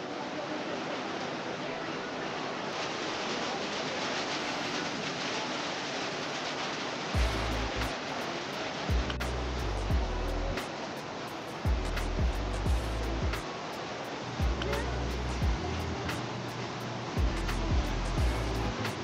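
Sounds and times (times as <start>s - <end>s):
rain on a metal roof: 0.0s - 19.0s
music with deep pulsing beat: 7.2s - 8.0s, 8.9s - 10.8s, 11.5s - 13.5s, 14.4s - 16.4s, 17.1s - 19.0s.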